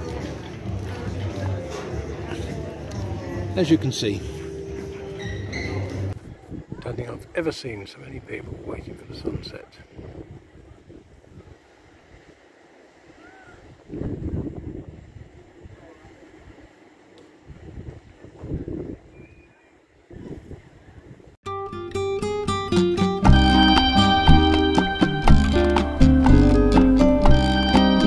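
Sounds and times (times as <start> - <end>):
plucked guitar-like music: 21.4 - 28.0
heavy bass: 22.0 - 28.0.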